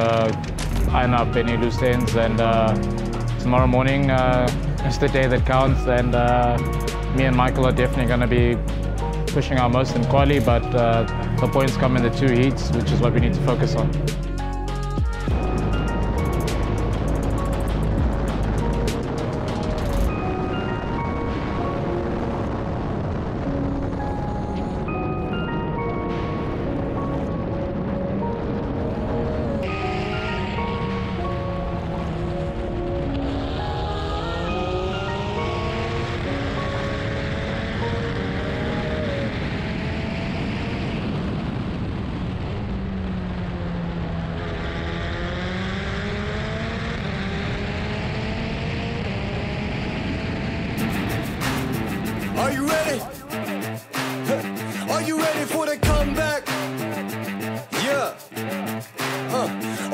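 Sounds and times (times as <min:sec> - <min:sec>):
race car engine and wind roar: 0:00.0 - 0:53.9
race car engine: 0:29.1 - 0:59.9.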